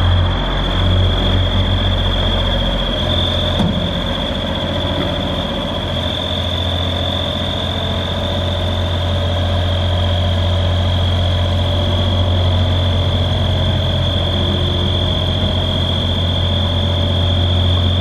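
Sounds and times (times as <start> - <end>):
diesel engine running: 0.0 - 18.0
high whine: 0.0 - 18.0.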